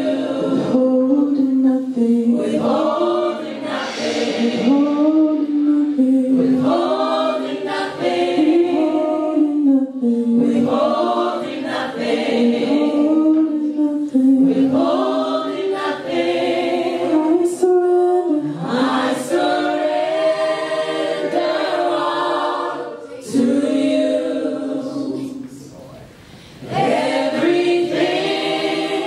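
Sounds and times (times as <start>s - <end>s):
gospel choir singing into microphones: 0.0s - 29.0s.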